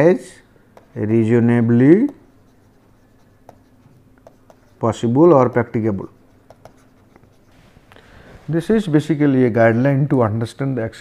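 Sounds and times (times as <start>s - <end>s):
stylus tapping on tablet screen: 0.7s - 1.0s, 3.4s - 4.7s, 6.4s - 7.3s
man's voice: 8.5s - 11.0s.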